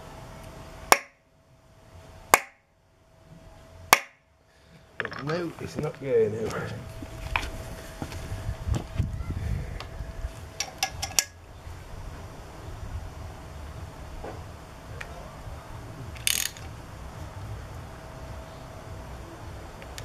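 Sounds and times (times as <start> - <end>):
ratchet spanner clicking: 16.1 - 16.7.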